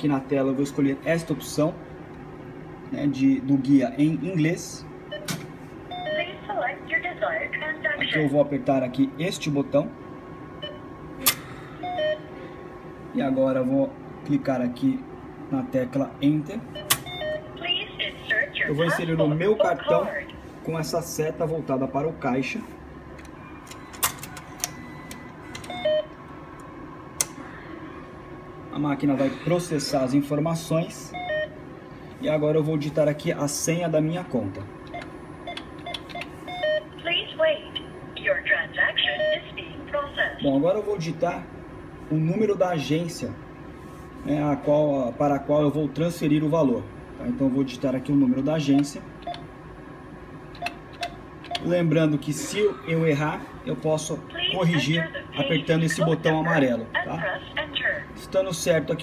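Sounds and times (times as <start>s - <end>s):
short keypad beeps: 5.1s - 6.3s, 11.8s - 12.3s, 16.7s - 17.5s, 23.4s - 26.1s, 34.9s - 36.9s
card reader clicking: 16.8s - 17.4s, 23.2s - 25.9s.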